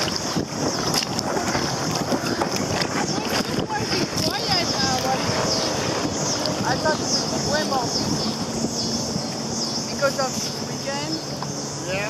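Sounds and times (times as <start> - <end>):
water splashing: 0.0 - 12.0
wind buffeting microphone: 0.0 - 12.0
voices: 1.3 - 12.0.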